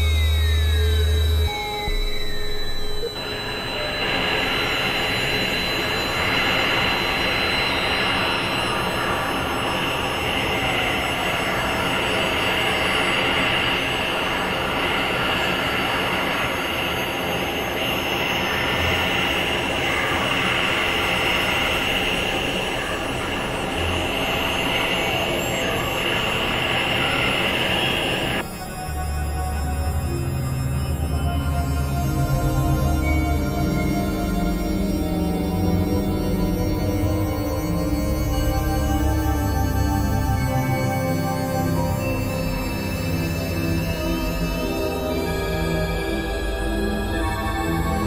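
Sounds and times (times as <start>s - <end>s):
high screeching noise: 0.0s - 48.0s
synthesizer noise: 0.0s - 48.0s.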